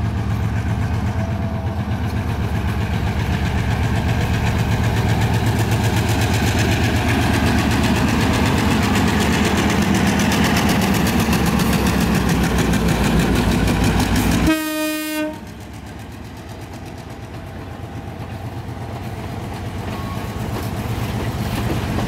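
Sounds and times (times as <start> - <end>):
diesel locomotive engine running: 0.0 - 22.0
locomotive horn blast: 14.3 - 15.6.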